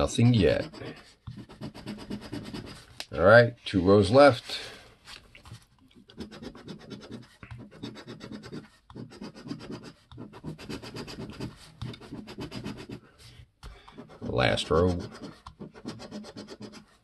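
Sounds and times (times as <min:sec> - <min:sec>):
coin scratching lottery ticket: 0:00.1 - 0:02.8, 0:06.1 - 0:13.0, 0:14.0 - 0:16.9.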